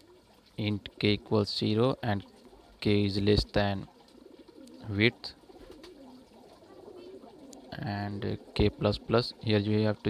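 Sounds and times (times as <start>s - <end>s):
bird cooing: 0.0s - 10.0s.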